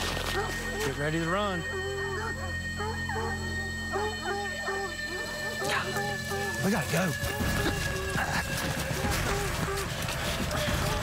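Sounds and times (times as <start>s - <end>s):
background music: 0.0s - 11.0s
dogs baying and yelping: 0.0s - 11.0s.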